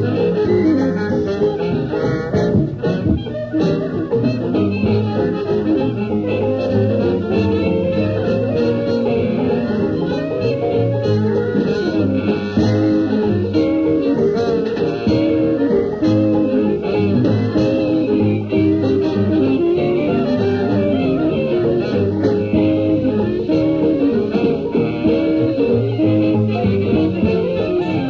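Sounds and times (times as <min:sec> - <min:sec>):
jazz band playing: 0:00.0 - 0:28.0.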